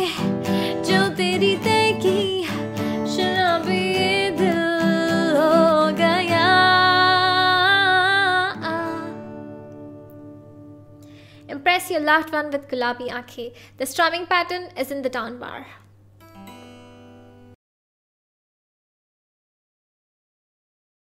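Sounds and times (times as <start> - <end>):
woman singing: 0.0 - 9.4
strummed acoustic guitar: 0.0 - 11.4, 16.2 - 17.6.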